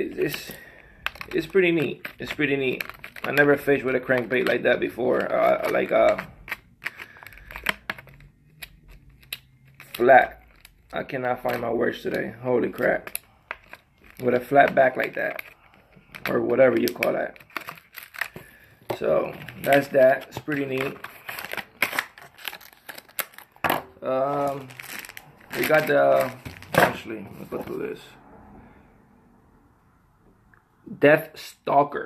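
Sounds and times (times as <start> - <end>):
plastic packaging crinkling: 0.0 - 27.8.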